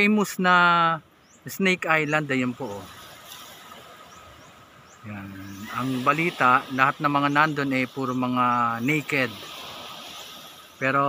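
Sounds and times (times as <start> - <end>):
small waves washing onto beach: 0.0 - 11.0.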